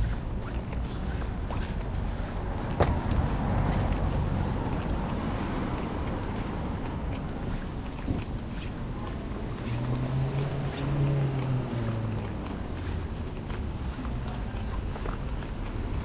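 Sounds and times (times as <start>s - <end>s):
passing vehicle engine hum: 0.0s - 16.0s
street traffic rumble: 0.0s - 16.0s.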